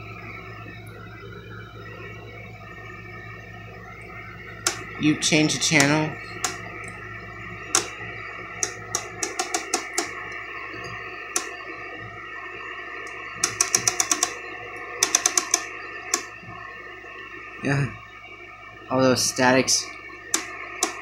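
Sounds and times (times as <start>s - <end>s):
static hiss and hum: 0.0s - 21.0s
rotary channel selector clicking: 4.6s - 4.8s, 5.7s - 7.0s, 7.7s - 8.0s, 8.6s - 10.2s, 13.4s - 14.4s, 15.0s - 16.3s, 20.3s - 21.0s.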